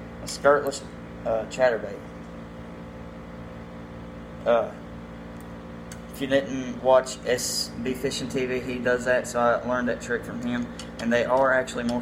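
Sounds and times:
humidifier humming and hissing: 0.0 - 12.0.

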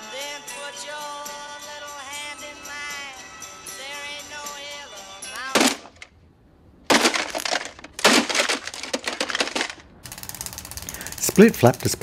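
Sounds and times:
plastic radio smashed cracking: 5.5 - 6.1, 6.9 - 9.9.

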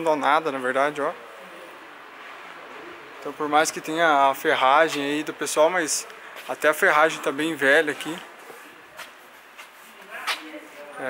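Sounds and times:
man talking: 0.0 - 1.2, 3.2 - 8.4
faint street background: 0.0 - 11.0.

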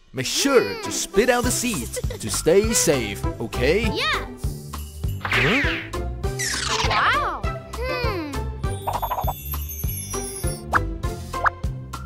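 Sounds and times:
upbeat children's music: 0.2 - 12.0
cartoon bloop pops: 5.2 - 7.0.

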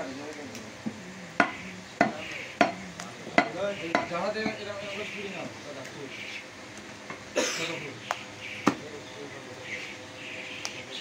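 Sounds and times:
cleaver chopping meat on wooden block: 1.4 - 4.6.

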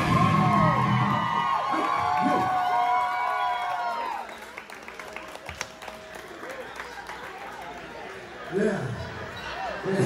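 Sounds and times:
audience cheering and whooping: 0.0 - 4.7.

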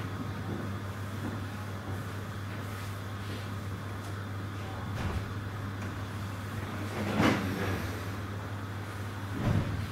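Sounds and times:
low hum of room noise: 0.0 - 9.9.

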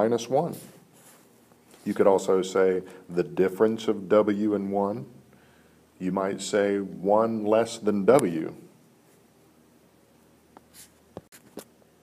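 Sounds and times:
stylus scratching and tapping tablet: 10.6 - 11.7.

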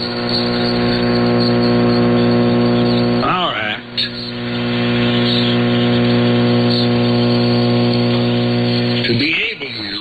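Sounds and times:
buzzing hum over radio: 0.0 - 10.0.

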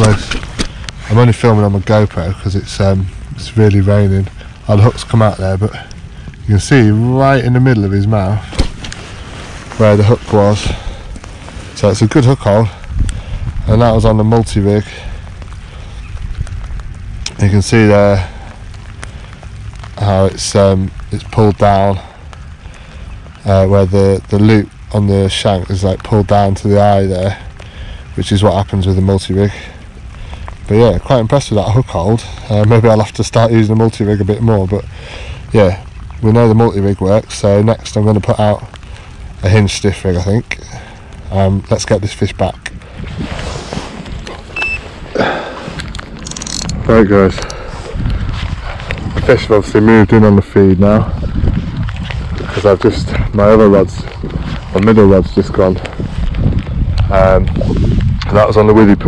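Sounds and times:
rustling of fishing rods: 0.0 - 3.0, 3.6 - 21.9, 38.0 - 58.4
heavy rain falling: 0.0 - 59.0
short high beep: 44.6 - 44.8.

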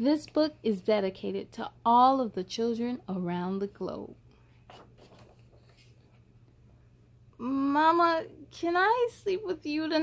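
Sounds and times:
paper page turning: 4.7 - 6.1.

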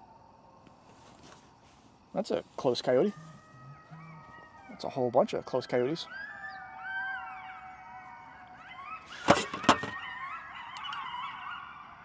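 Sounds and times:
coyotes howling: 0.0 - 0.8, 2.1 - 12.0.

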